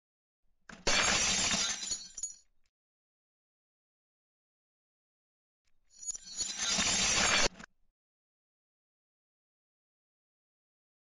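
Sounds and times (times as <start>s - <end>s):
glass shattering: 0.9s - 2.4s, 6.0s - 7.5s.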